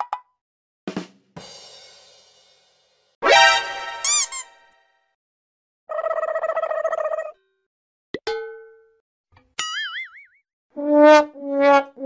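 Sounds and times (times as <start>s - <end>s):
springy cartoon boings: 3.2s - 4.6s.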